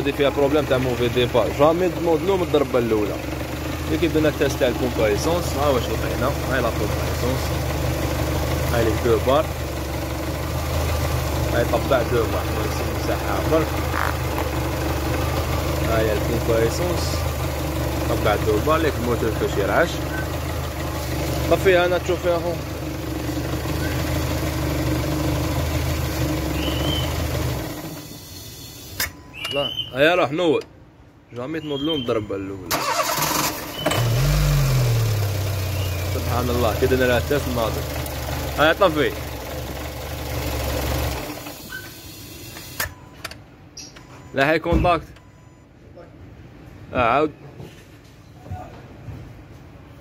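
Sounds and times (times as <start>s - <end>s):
car engine idling: 0.0s - 28.9s, 32.7s - 42.5s.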